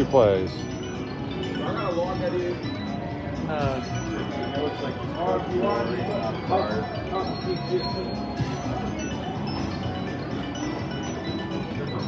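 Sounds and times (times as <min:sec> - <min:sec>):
slot machine chimes and jingles: 0:00.0 - 0:12.0.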